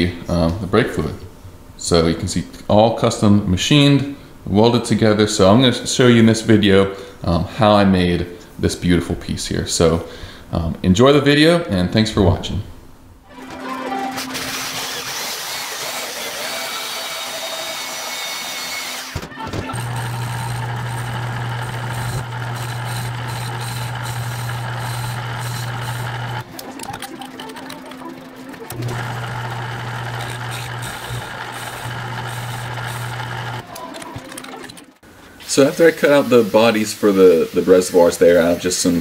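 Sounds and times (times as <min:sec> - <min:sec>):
bandsaw cutting steel tubing: 0:14.1 - 0:26.4, 0:28.7 - 0:33.6
metal lathe humming: 0:16.4 - 0:26.4, 0:28.7 - 0:33.6.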